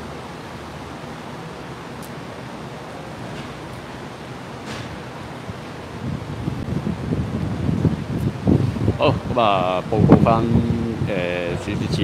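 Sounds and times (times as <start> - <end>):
wind buffeting microphone: 4.8 - 12.0.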